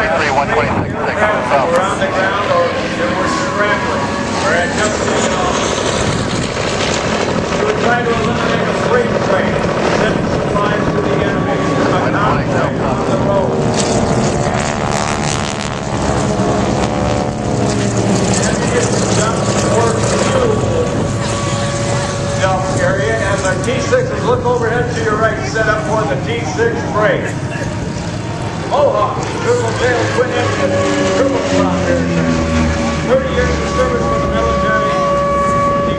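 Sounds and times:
voices: 0.0s - 6.2s, 7.1s - 13.6s, 17.7s - 35.9s
propeller planes droning: 0.0s - 35.9s.

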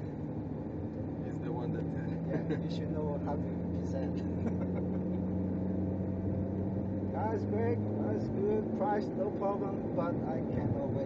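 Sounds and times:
car engine drone: 0.0s - 11.0s.

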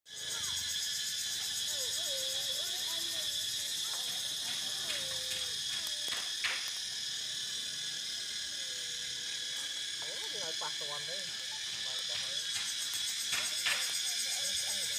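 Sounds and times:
high-pitched insect chorus: 0.1s - 14.9s.

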